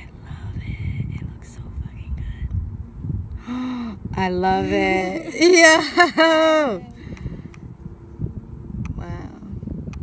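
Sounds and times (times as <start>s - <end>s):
low irregular rumble: 0.0s - 10.0s.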